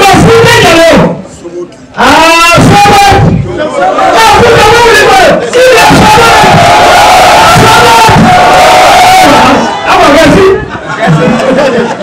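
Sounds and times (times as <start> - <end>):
man shouting into a microphone: 0.0 - 1.3, 2.0 - 10.7
crowd shouting: 2.0 - 12.0.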